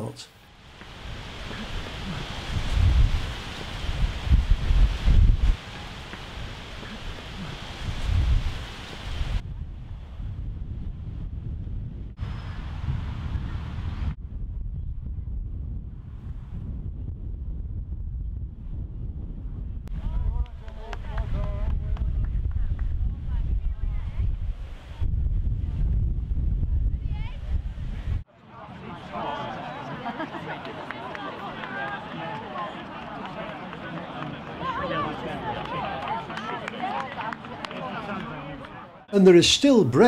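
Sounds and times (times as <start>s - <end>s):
outdoor background noise: 0.0s - 40.0s
wind buffeting microphone: 0.7s - 28.3s
faint voices: 28.3s - 39.4s.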